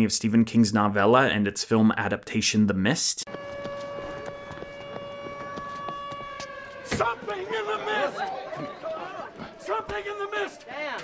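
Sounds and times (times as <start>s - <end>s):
siren steady pitch: 3.3s - 10.0s.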